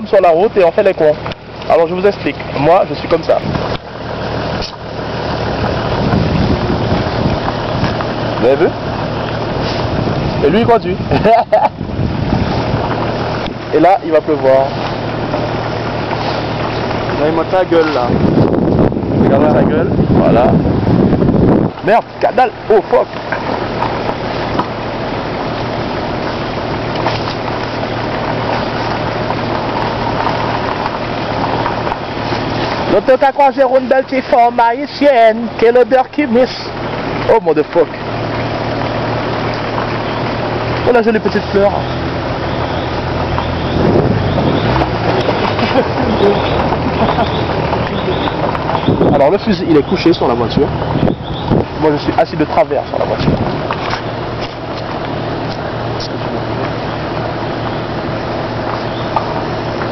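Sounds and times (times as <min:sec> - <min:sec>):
car engine: 0:00.0 - 0:59.9
rumbling road noise: 0:00.0 - 0:59.9
wind noise: 0:02.7 - 0:13.9, 0:14.7 - 0:32.9, 0:41.6 - 0:59.9.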